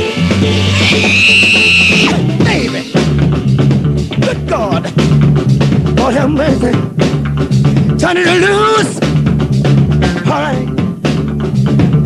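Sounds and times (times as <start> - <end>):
bass line: 0.0 - 12.0
drums: 0.0 - 12.0.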